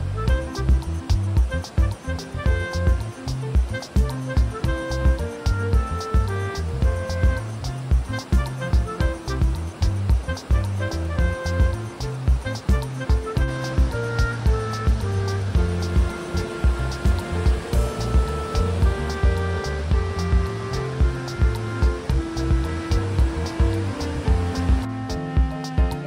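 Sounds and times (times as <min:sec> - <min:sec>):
background music with steady beat: 0:00.0 - 0:26.0.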